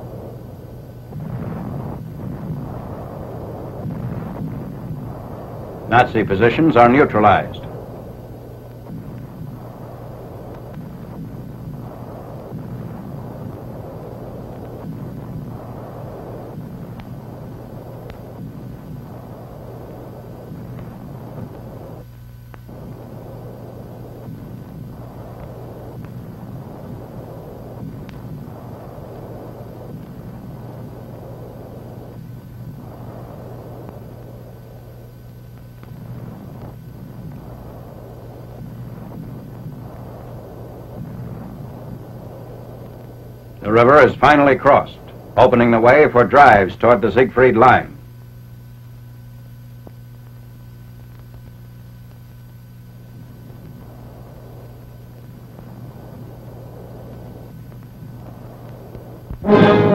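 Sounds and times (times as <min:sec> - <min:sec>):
faint clicks and crackles: 0:00.0 - 0:05.9, 0:06.8 - 0:43.7, 0:48.0 - 0:59.4
low rumbling noise: 0:00.0 - 0:43.6, 0:59.4 - 0:59.9
constant low hum: 0:00.0 - 0:59.9.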